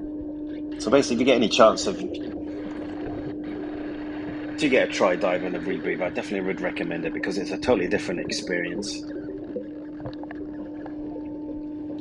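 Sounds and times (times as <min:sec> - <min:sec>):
underwater low hum: 0:00.0 - 0:12.0
faint higher tone: 0:04.6 - 0:12.0.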